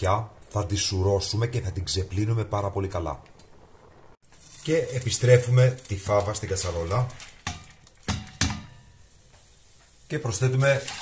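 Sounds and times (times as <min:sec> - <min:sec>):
colander knocking on metal pot: 0:07.4 - 0:08.8.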